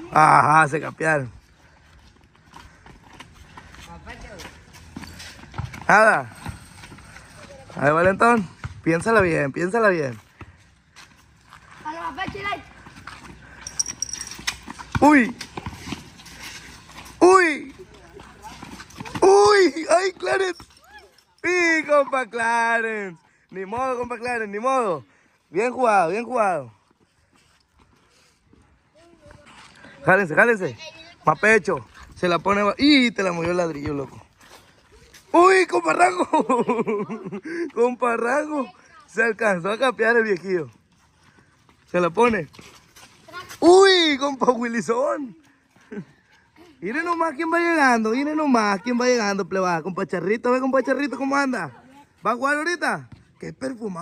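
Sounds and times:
children running on dirt: 0.0s - 54.0s.

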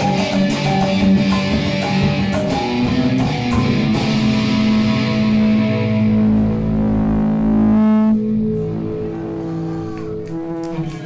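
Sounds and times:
amplified guitar and electronics droning: 0.0s - 11.0s.

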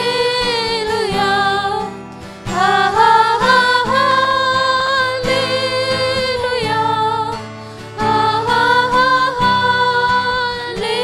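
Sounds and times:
women singing into microphones: 0.0s - 11.0s.

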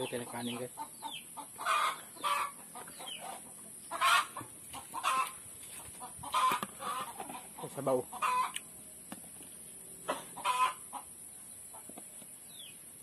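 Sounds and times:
chickens clucking: 0.0s - 12.8s.

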